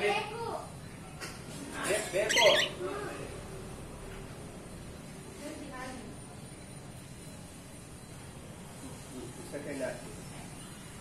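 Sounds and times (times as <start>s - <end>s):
cockatiel squawking: 2.2s - 2.8s.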